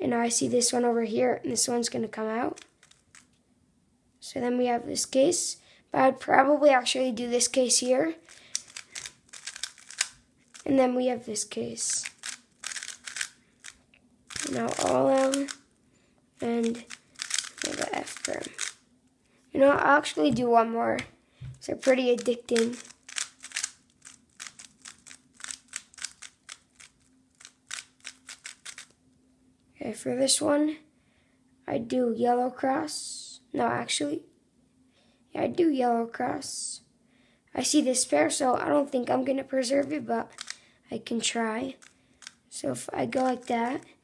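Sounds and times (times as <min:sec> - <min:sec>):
plastic puzzle cube clicking: 0:02.6 - 0:03.3, 0:08.3 - 0:10.6, 0:12.0 - 0:15.6, 0:16.6 - 0:18.8, 0:21.8 - 0:28.9, 0:40.3 - 0:40.6, 0:41.8 - 0:42.4, 0:43.2 - 0:43.5.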